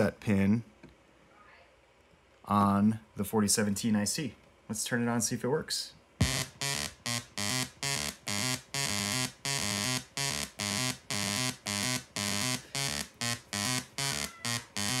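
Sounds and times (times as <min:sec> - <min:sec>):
harsh buzzy synth notes: 0:06.2 - 0:15.0.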